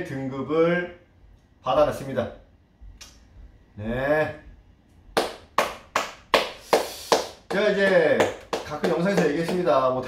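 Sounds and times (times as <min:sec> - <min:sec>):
hands clapping: 0:05.2 - 0:10.0.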